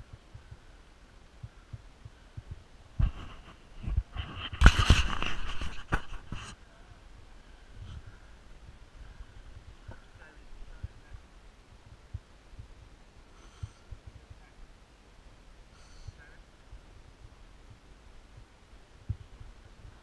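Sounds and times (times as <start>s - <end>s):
wind on microphone: 0.0s - 13.0s, 16.1s - 20.0s.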